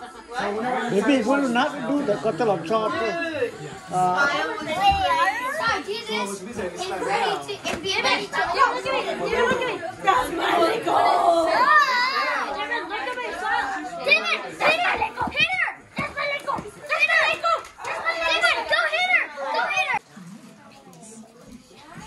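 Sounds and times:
children talking and shouting: 0.0s - 22.0s.

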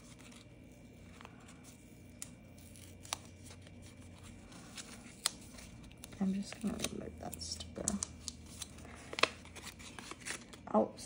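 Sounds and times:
paper sticker sheet handling: 0.0s - 10.6s
low room hum: 0.0s - 11.0s.

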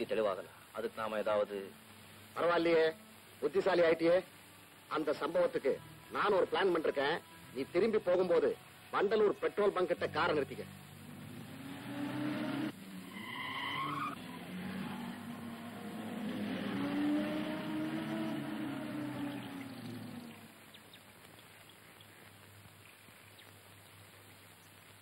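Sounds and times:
car tyres squealing: 11.5s - 20.5s.

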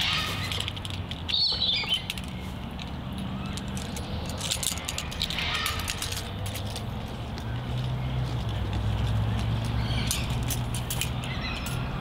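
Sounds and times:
camp gear clicks and clinks: 0.0s - 12.0s
outdoor ambience: 0.0s - 12.0s.

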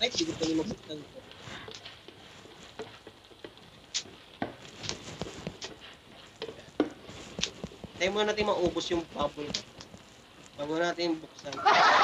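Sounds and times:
bubble wrap popping: 0.0s - 10.7s.

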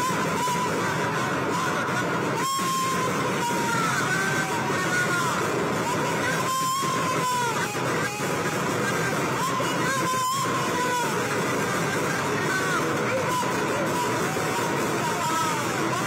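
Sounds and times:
loud street crowd din: 0.0s - 16.0s
wavering melody through loudspeakers: 0.0s - 16.0s.

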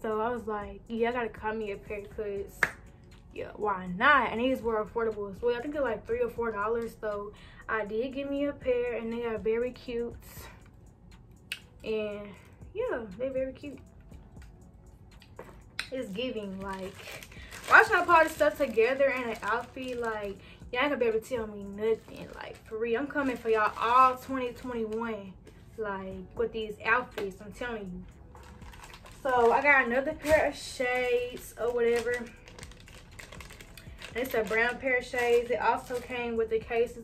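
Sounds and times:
woman speaking: 0.0s - 2.7s, 3.3s - 10.6s, 11.8s - 13.8s, 15.9s - 28.1s, 29.2s - 32.4s, 34.1s - 37.0s
plastic zip bag crinkling: 16.4s - 20.5s, 28.3s - 36.4s.

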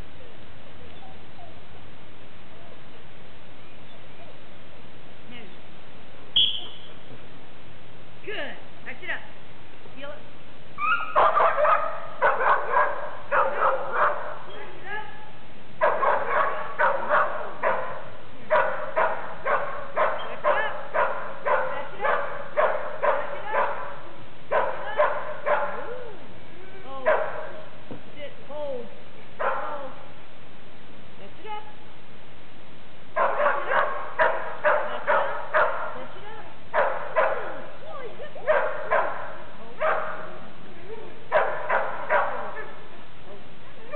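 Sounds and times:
dog barking and yipping: 10.8s - 14.6s, 15.8s - 26.0s, 27.1s - 27.7s, 29.4s - 29.9s, 33.2s - 36.0s, 36.7s - 37.8s, 38.4s - 40.4s, 41.3s - 42.8s.

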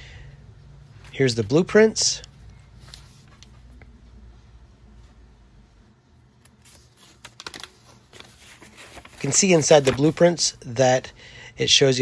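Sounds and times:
paper crackling: 6.4s - 10.6s.

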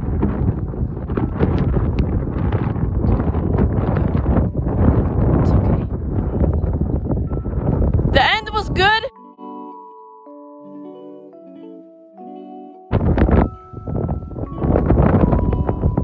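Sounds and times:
wind buffeting microphone: 0.0s - 9.1s, 12.9s - 16.0s.

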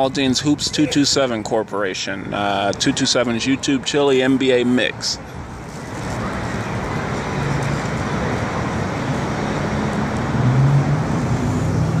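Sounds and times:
street traffic noise: 0.0s - 12.0s
vehicle engine hum: 5.0s - 12.0s.

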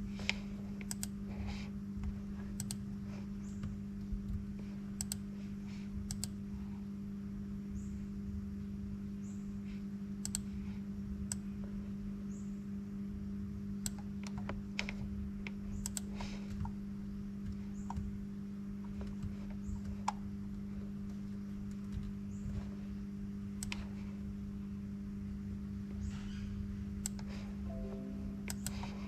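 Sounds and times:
low electrical hum: 0.0s - 29.0s.

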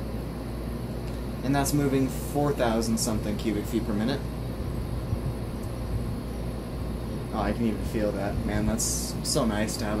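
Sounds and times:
ceiling fan rushing air: 0.0s - 10.0s.

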